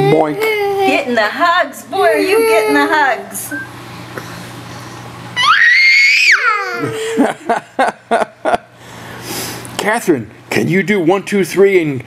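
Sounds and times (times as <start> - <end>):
child squealing happily: 5.4 - 7.0.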